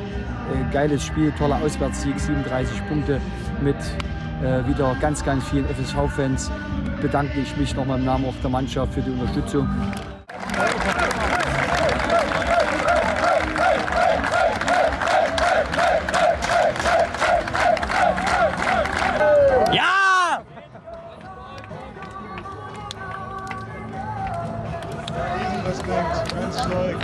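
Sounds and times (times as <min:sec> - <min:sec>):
crowd clapping in rhythm: 0:09.9 - 0:19.8, 0:20.7 - 0:27.0
crowd cheering: 0:10.3 - 0:21.7
crowd noise: 0:10.3 - 0:27.0
fans shouting: 0:10.5 - 0:20.6.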